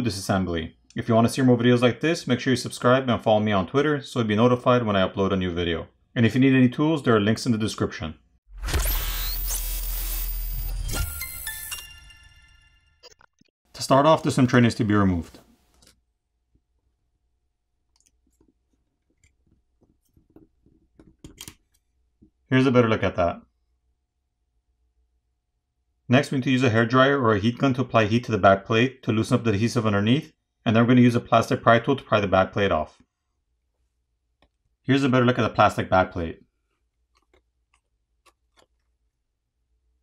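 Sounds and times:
small clicks and scrapes: 0:17.9 - 0:21.9, 0:36.8 - 0:39.0.

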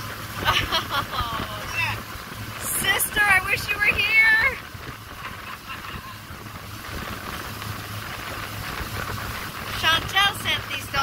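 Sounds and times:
outboard motor running: 0:00.0 - 0:11.0
water rushing: 0:00.0 - 0:11.0
wind on microphone: 0:00.0 - 0:11.0.

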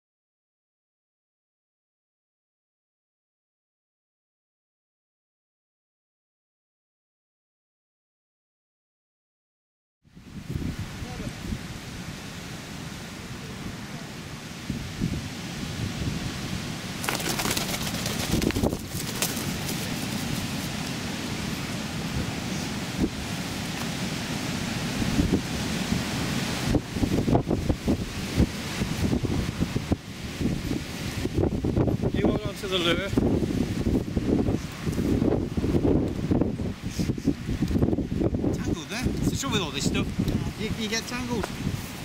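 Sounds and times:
strong wind buffeting microphone: 0:10.1 - 0:12.6, 0:13.2 - 0:42.0.

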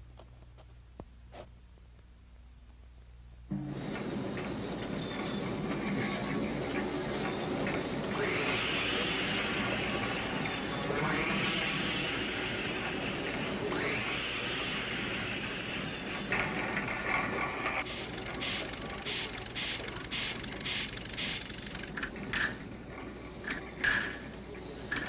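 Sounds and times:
small machine whirring and clicking: 0:03.6 - 0:25.0.

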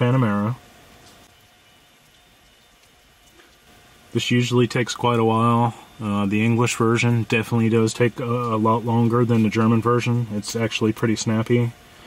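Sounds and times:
faint steady hiss: 0:00.0 - 0:12.0
thin steady tone: 0:00.0 - 0:12.0.

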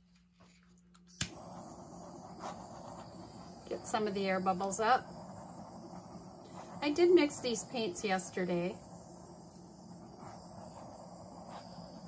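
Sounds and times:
butane torch clicking alight: 0:00.9 - 0:12.0
torch flame hissing: 0:01.1 - 0:12.0.

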